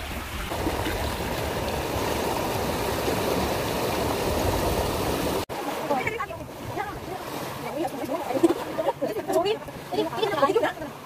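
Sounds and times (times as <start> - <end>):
sea waves washing among boulders: 0.0 - 11.0.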